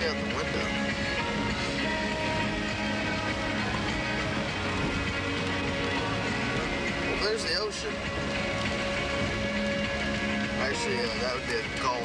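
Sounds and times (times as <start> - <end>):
low road noise: 0.0 - 12.0
music in car cabin: 0.0 - 12.0.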